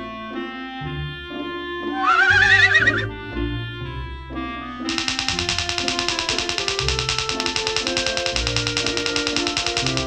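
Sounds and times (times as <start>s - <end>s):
background music: 0.0s - 10.0s
horse whinnying: 1.9s - 3.1s.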